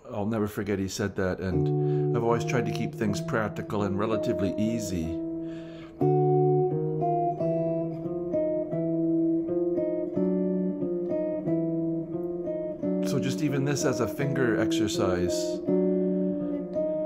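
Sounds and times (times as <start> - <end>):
electric guitar playing intervals: 1.4 - 17.0.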